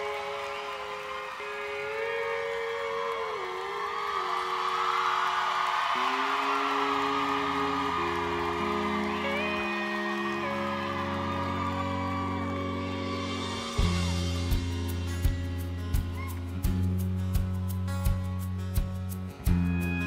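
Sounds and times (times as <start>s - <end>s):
strummed acoustic guitar: 6.9s - 20.0s
low bass notes: 7.7s - 20.0s
pedal steel guitar sliding notes: 19.5s - 20.0s.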